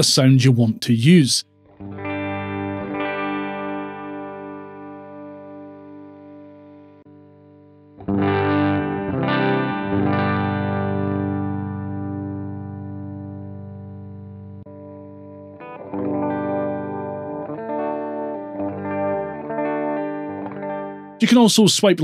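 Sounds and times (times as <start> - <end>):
electric guitar chords strummed: 1.6 - 21.2
electric guitar notes picked: 1.8 - 21.2.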